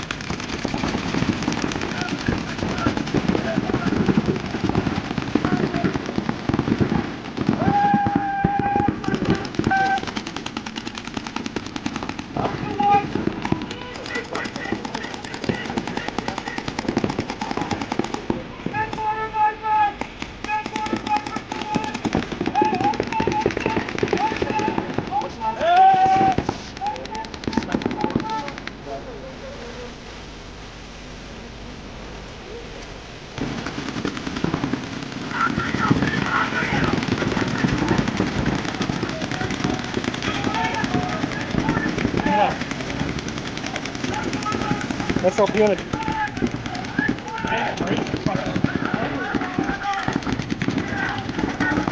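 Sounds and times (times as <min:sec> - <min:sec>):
paintball markers firing: 0:00.0 - 0:19.1, 0:20.0 - 0:28.8, 0:33.5 - 0:51.9
players shouting: 0:00.8 - 0:28.6, 0:34.4 - 0:51.9.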